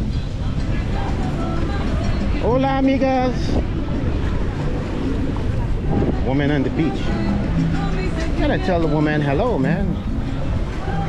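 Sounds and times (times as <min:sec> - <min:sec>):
beach ambience: 0:00.0 - 0:11.0
wind rushing on microphone: 0:00.0 - 0:11.0.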